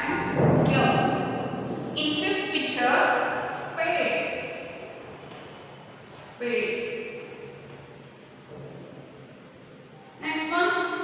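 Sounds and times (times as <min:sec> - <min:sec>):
woman speaking: 0:00.0 - 0:01.3, 0:02.0 - 0:04.6, 0:06.4 - 0:07.1, 0:10.2 - 0:11.0.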